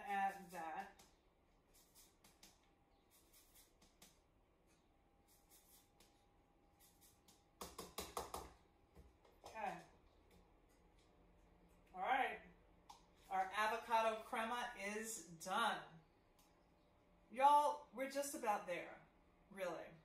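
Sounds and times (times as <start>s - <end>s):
lime zest grating: 0.0s - 4.2s, 5.2s - 7.6s.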